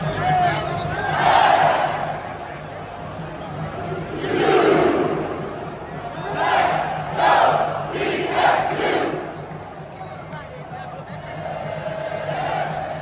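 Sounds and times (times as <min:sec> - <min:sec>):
stadium crowd shouting in unison: 0:00.0 - 0:02.6, 0:03.5 - 0:09.6, 0:11.1 - 0:13.0.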